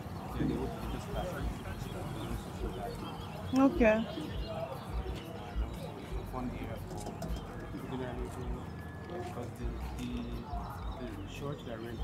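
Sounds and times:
bird calling: 0.0s - 12.0s.

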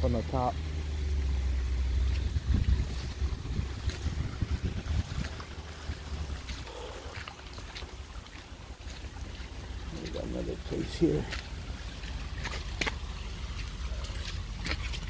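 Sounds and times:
wind buffeting microphone: 2.0s - 6.7s.

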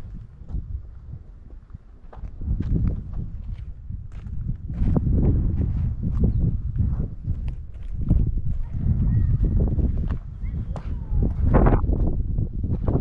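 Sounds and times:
footsteps on lava rock: 0.0s - 13.0s
wind rumble on microphone: 0.0s - 13.0s.

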